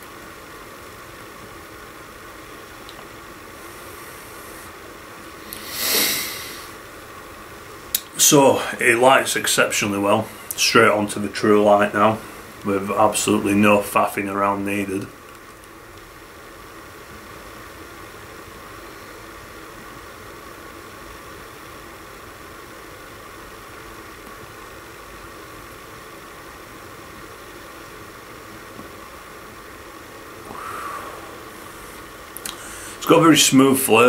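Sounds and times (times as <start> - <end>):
room noise hiss: 0.0 - 34.0
soft breathy swell: 30.4 - 33.0.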